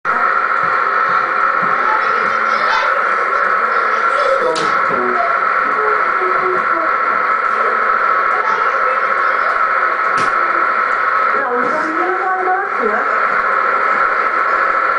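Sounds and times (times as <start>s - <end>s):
faint voices talking: 0.1s - 14.9s
high whine and hiss: 0.1s - 14.9s.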